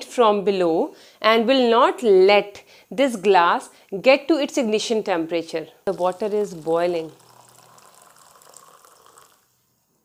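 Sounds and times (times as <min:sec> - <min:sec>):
water trickling into a cup: 0:05.9 - 0:09.7.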